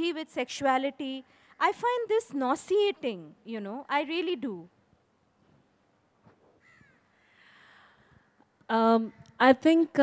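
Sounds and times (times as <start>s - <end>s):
faint bird calls: 6.6s - 7.3s.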